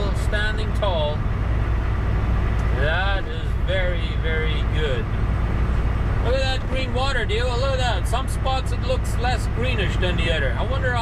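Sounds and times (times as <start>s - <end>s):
diesel truck engine rumble: 0.0s - 11.0s
road noise: 0.0s - 11.0s.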